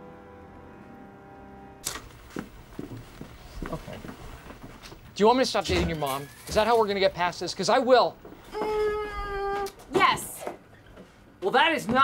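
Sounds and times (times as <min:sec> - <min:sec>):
woman humming hmm: 0:08.5 - 0:09.7
woman speaking: 0:08.6 - 0:10.6.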